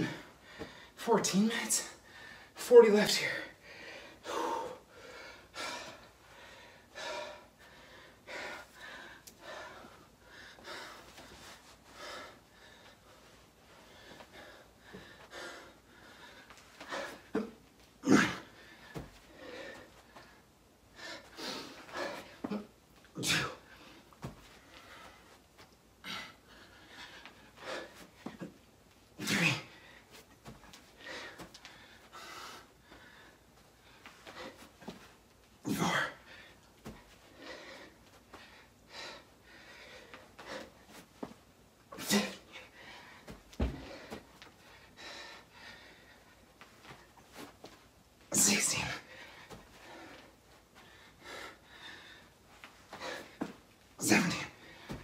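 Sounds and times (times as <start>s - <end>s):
man breathing heavily: 0.0s - 55.0s.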